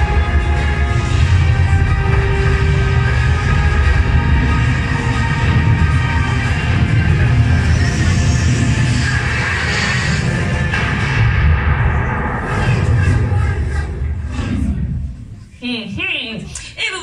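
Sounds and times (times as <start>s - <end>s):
deep rumble of explosions: 0.0s - 15.3s
film soundtrack music over loudspeakers: 0.0s - 17.0s.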